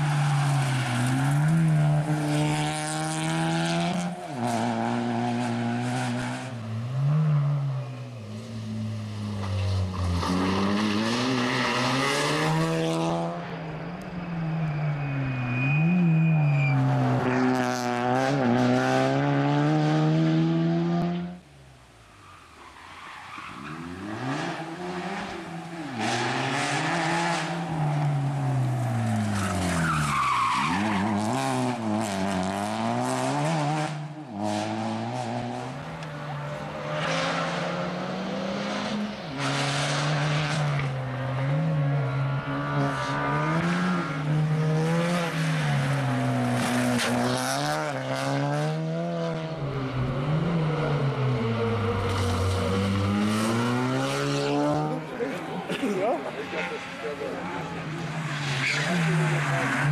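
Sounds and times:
rally car engine revving: 0.0 - 14.0, 14.7 - 21.4, 23.4 - 59.9.

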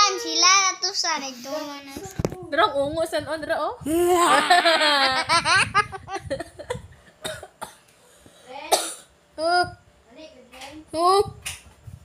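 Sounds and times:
girl coughing: 6.7 - 7.8, 8.5 - 9.1.

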